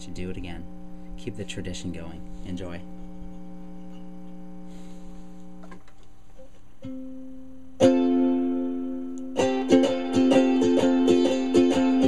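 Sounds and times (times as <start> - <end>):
steady low hum: 0.0 - 12.0
faint brushing hiss: 0.8 - 6.4.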